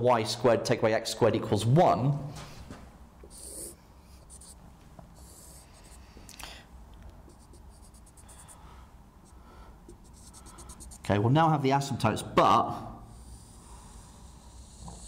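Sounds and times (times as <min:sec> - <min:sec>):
marker scratching on whiteboard: 0:03.3 - 0:04.6, 0:05.2 - 0:06.0, 0:07.2 - 0:08.6, 0:09.2 - 0:11.2.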